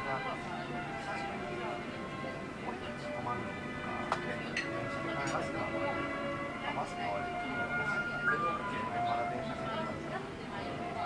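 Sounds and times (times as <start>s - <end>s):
background music with held notes: 0.0s - 11.0s
indistinct customer chatter: 0.0s - 11.0s.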